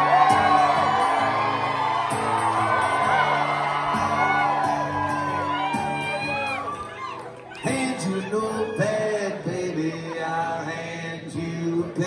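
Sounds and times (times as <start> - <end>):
audience whooping: 0.0 - 9.3
acoustic guitar: 0.0 - 12.0
live band playing country rock: 0.0 - 12.0.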